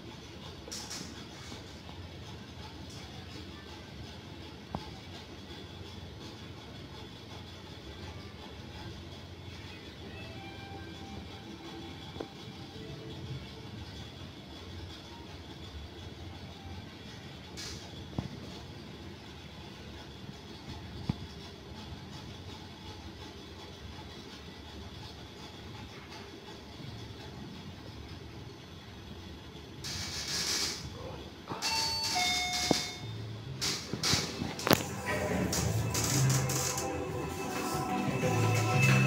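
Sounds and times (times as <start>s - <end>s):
elevator hum: 0.0s - 25.4s, 26.3s - 39.0s
music: 7.7s - 14.0s, 34.6s - 39.0s
elevator clicks and clunks: 31.5s - 39.0s.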